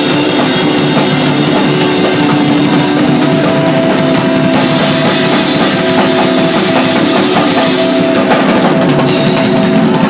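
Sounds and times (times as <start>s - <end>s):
cymbals ringing: 0.0s - 10.0s
drum hits: 0.0s - 10.0s
live band playing loudly: 0.0s - 10.0s.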